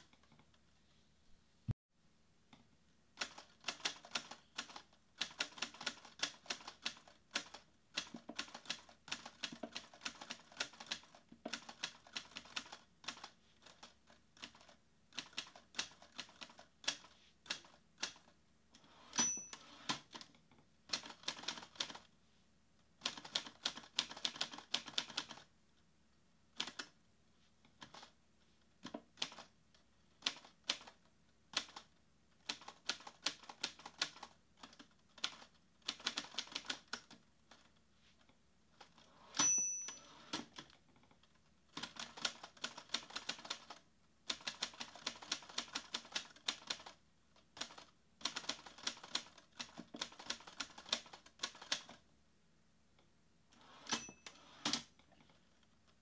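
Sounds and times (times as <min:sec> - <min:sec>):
typewriter bell ding: 0:19.1 - 0:19.9, 0:39.4 - 0:40.3, 0:53.8 - 0:54.5.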